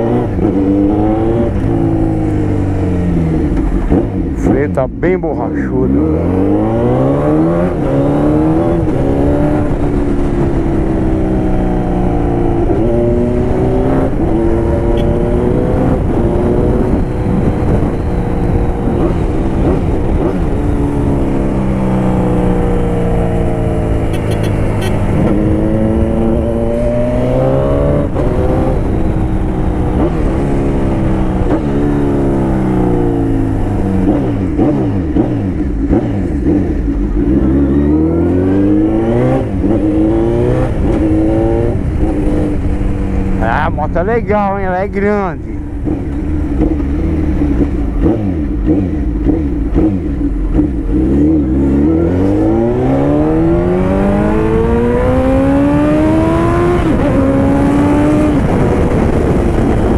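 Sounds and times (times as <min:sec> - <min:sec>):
motorcycle engine accelerating: 0:00.0 - 0:59.9
wind noise: 0:06.0 - 0:59.9.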